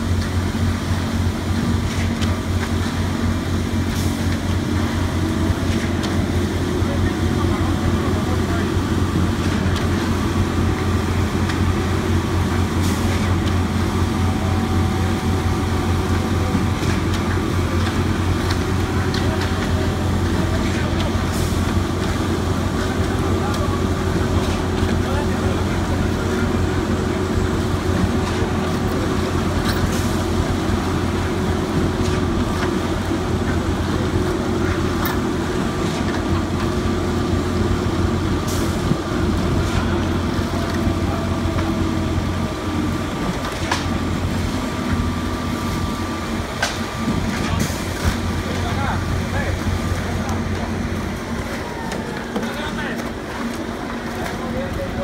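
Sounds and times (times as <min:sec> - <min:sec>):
diesel engine droning: 0:00.0 - 0:55.0.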